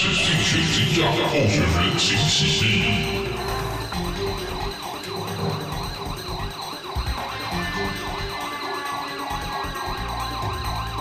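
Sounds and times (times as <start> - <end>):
background music: 0.0 - 11.0
electronic siren-like wailing tone: 0.0 - 11.0.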